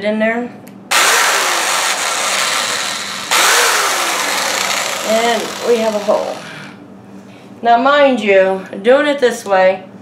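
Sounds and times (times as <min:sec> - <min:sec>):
electric drill boring wood: 0:00.9 - 0:06.8.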